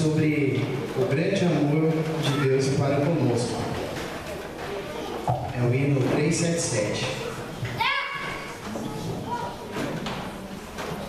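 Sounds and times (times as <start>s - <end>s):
low murmur in echoing hall: 0.0s - 11.0s.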